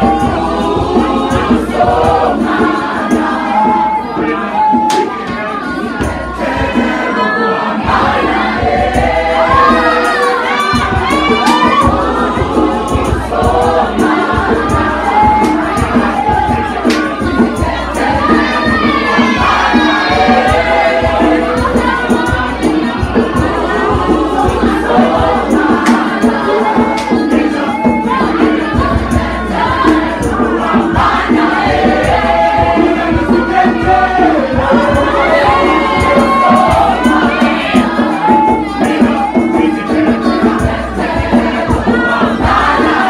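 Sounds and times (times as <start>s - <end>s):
choir singing: 0.0s - 43.0s
crowd cheering: 0.0s - 43.0s
steady low beat: 7.9s - 43.0s.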